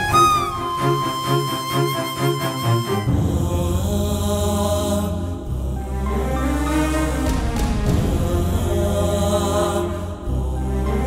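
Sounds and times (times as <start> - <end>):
pulsing melody: 0.0 - 4.2.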